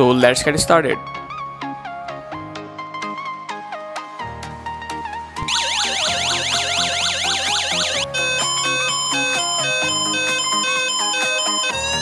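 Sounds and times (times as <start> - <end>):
background music: 0.0 - 12.0
electronic siren sweeping: 5.4 - 12.0.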